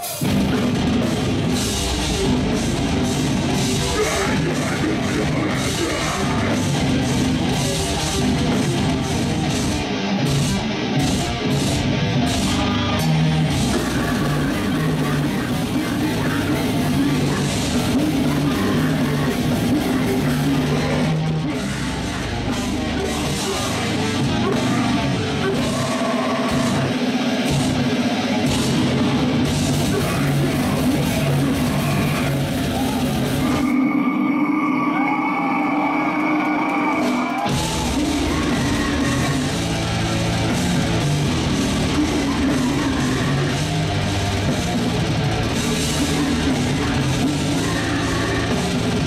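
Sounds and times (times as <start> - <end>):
metal band playing live: 0.0 - 49.0
person singing: 3.7 - 8.6, 12.3 - 27.3, 29.7 - 40.6, 41.5 - 44.5, 45.6 - 49.0
sustained guitar note: 30.0 - 41.6.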